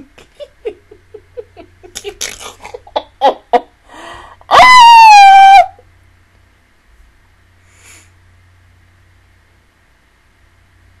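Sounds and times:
woman's high-pitched squeal: 0:04.5 - 0:05.8.

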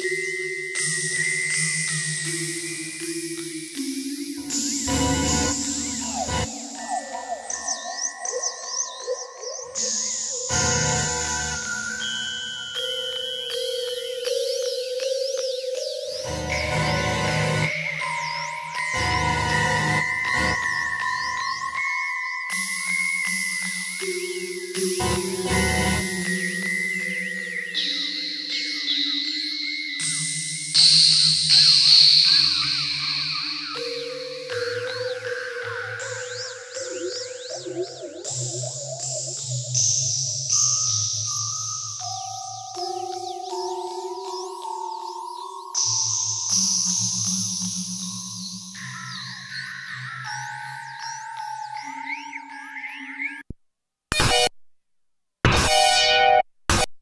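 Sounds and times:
synthesizer drone tones: 0:04.4 - 0:07.5, 0:16.3 - 0:17.7, 0:25.0 - 0:26.3
wavering electronic chirps: 0:04.4 - 0:14.1, 0:14.9 - 0:22.8, 0:24.4 - 0:26.5
bass: 0:04.5 - 0:06.5, 0:16.3 - 0:17.7, 0:19.0 - 0:21.2, 0:25.0 - 0:26.2
synthesizer held tones: 0:04.9 - 0:06.5, 0:25.0 - 0:26.2.

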